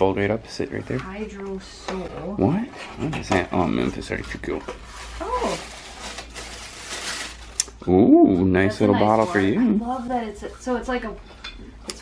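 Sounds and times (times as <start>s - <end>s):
plastic packaging rustling: 2.5s - 7.6s.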